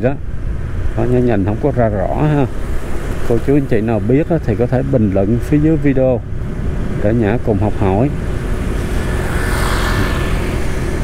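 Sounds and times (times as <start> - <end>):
motorbike engine hum: 0.0 - 11.0
motorbike passing: 0.0 - 11.0
wind rumble: 0.0 - 11.0.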